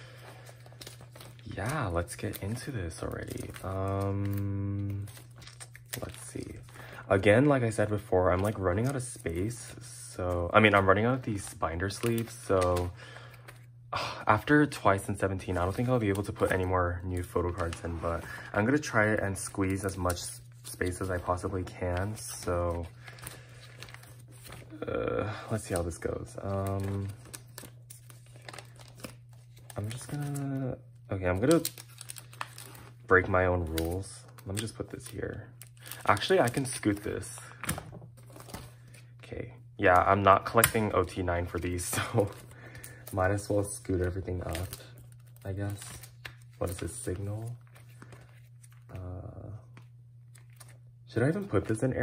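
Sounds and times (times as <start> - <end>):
plastic pages crinkling: 0.0 - 13.7, 14.3 - 39.2, 39.8 - 50.8
low steady hum: 0.0 - 52.0
plastic sleeves rustling and clicking: 0.4 - 6.8, 15.5 - 24.8, 25.5 - 39.0, 39.9 - 50.8.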